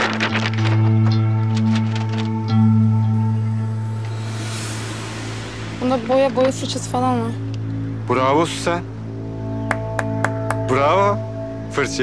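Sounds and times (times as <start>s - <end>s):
low drone with held tones: 0.8s - 12.0s
soft rushing swell: 3.9s - 8.2s.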